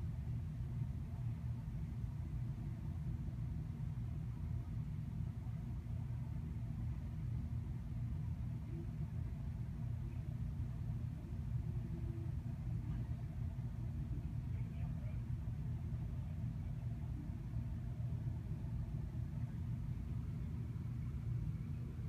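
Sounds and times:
steady low rumble: 0.0 - 22.0
faint muffled voices: 8.4 - 21.9.

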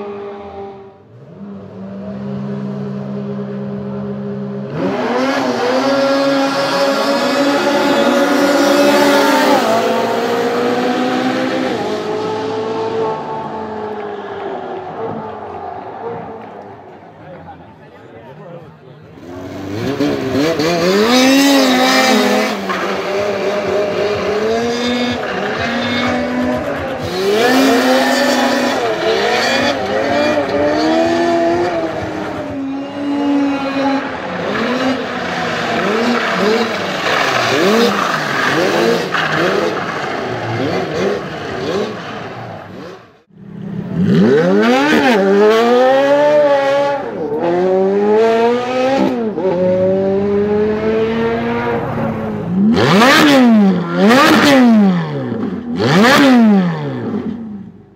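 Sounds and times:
snowmobile engine revving: 0.0 - 17.8, 19.0 - 57.7.

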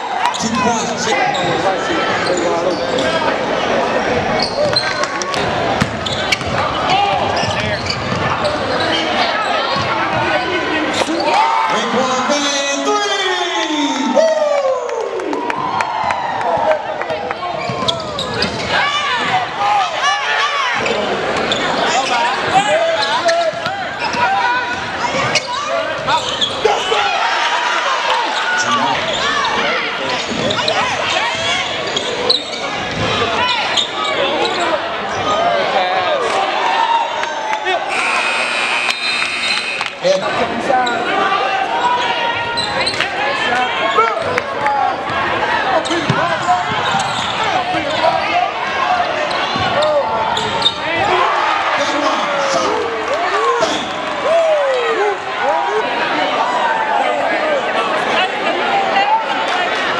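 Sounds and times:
crowd shouting in a gym: 0.0 - 59.9
basketball bouncing on hardwood: 5.8 - 6.6
steady buzzing tone: 37.9 - 40.0.

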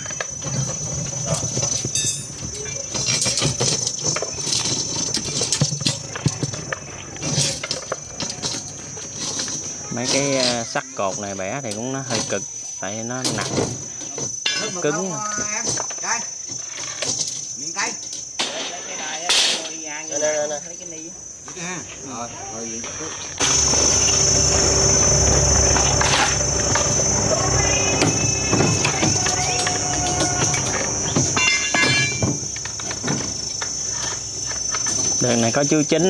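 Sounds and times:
insects chorus: 0.0 - 36.0
indistinct voices: 17.6 - 36.0
low steady hum: 23.4 - 35.3.

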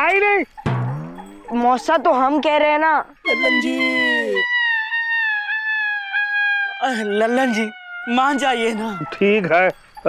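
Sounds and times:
high-pitched held cry: 3.2 - 9.5
rapid wavering vocal exclamations: 3.2 - 9.5.

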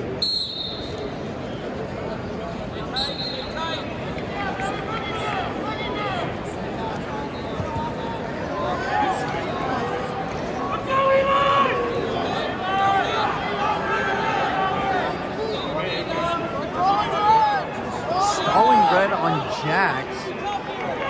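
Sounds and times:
arena crowd noise: 0.0 - 21.0
referee's whistle: 0.2 - 1.1, 2.9 - 3.8
crowd voices shouting: 3.3 - 21.0.

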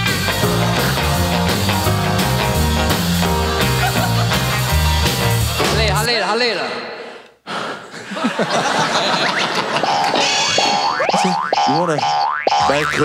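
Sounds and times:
person talking: 5.6 - 6.9, 11.1 - 13.0
comic boing sound effect: 9.8 - 13.0.

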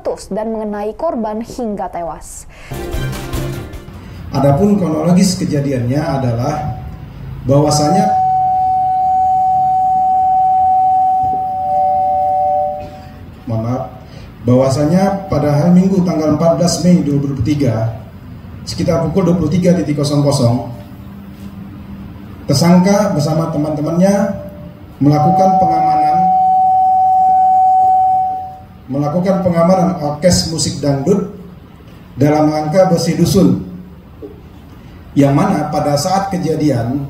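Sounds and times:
high ringing tone: 6.2 - 13.4, 24.0 - 28.9
microphone feedback whistle: 6.5 - 7.0, 7.6 - 13.2, 24.2 - 28.8
lower steady tone: 6.5 - 13.3, 24.1 - 28.9.

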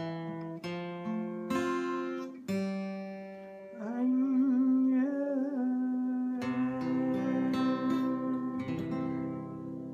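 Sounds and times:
acoustic guitar chord ringing: 0.0 - 9.9
man singing long note: 3.8 - 9.4.

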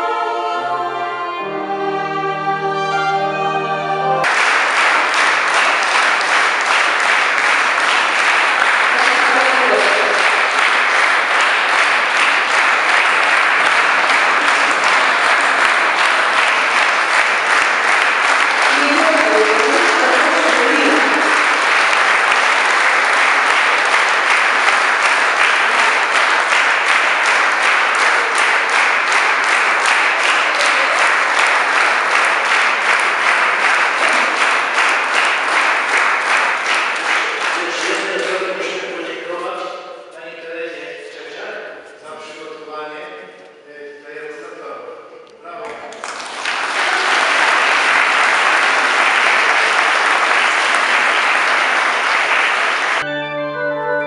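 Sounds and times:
audience applauding: 4.2 - 39.5, 45.5 - 53.2.

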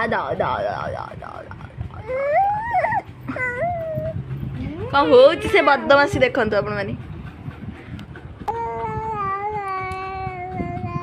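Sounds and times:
baby cooing: 1.9 - 4.2, 8.5 - 11.0.

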